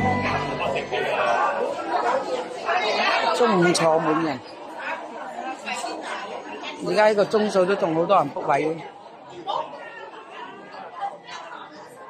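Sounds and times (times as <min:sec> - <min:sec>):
chatter of many diners: 0:00.0 - 0:12.0.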